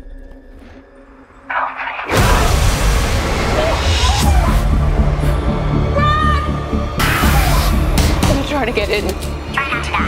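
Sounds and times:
tense music: 0.0 - 10.0.

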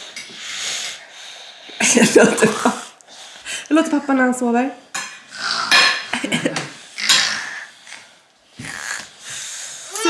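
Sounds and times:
toddler imitating snoring: 5.3 - 5.8, 7.0 - 10.0.

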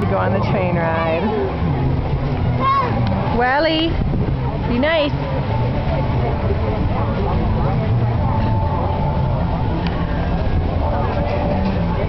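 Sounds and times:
indistinct voices of people: 0.0 - 12.0.

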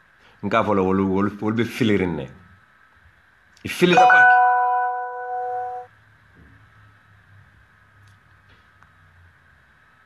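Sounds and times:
electronic chime tone: 3.9 - 5.9.

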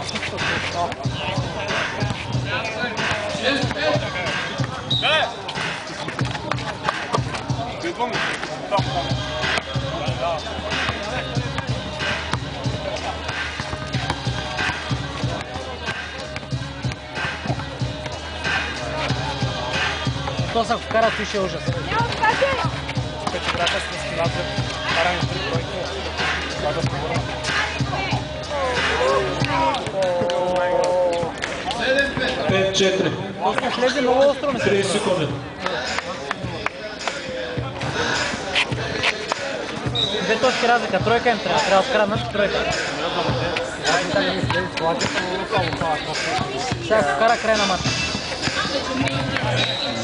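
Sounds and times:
music with gliding vocals: 0.0 - 32.7, 34.7 - 50.0
shoes on court: 3.0 - 18.2, 19.8 - 25.7, 35.7 - 41.2, 43.3 - 50.0
basketball bouncing on concrete: 6.0 - 7.6, 10.6 - 17.9, 44.3 - 49.5.

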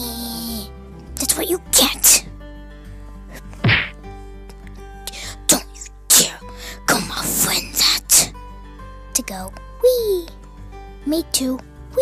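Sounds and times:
short whack: 3.6 - 4.0.

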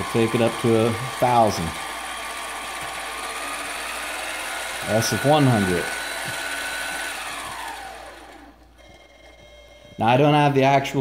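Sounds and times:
lathe motor whine winding down: 0.0 - 9.0.

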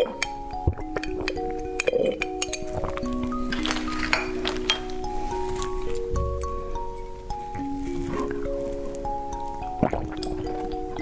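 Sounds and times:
background music with held notes: 0.0 - 11.0
straw clinking glass test tubes: 0.0 - 11.0.

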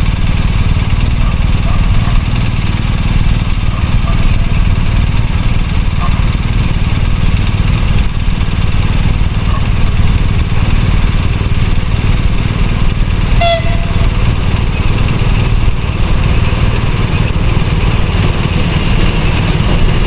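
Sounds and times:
train rumbling: 0.0 - 20.0
horn-like tone: 13.3 - 14.2.

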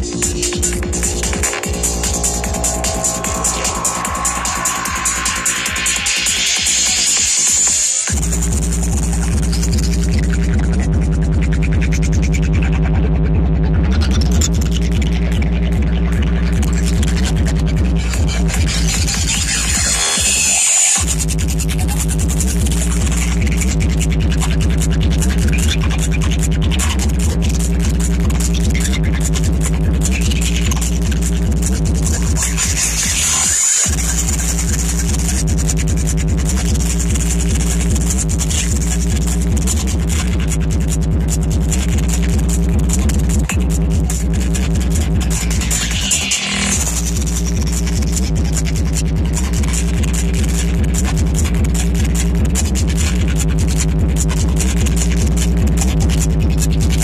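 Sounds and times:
rising sweep: 0.0 - 8.1
electronic dance music: 0.0 - 57.0.

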